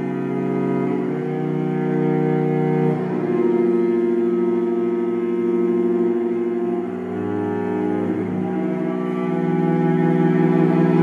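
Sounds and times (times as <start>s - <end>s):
cello bowed note: 0.0s - 11.0s.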